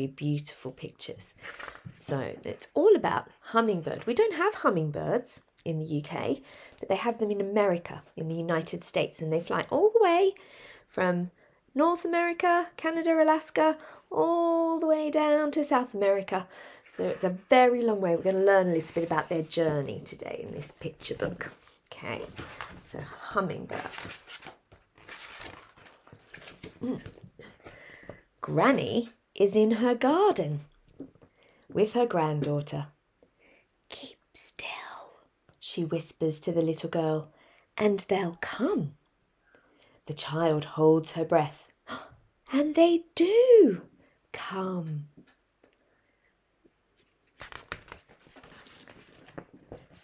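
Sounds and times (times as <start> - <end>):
book pages turning: 1.4 - 2.0, 18.2 - 27.8, 47.0 - 50.0
paper rustling: 18.2 - 27.8, 47.0 - 50.0
paper crackling: 18.3 - 19.8, 20.5 - 27.3, 47.2 - 50.0.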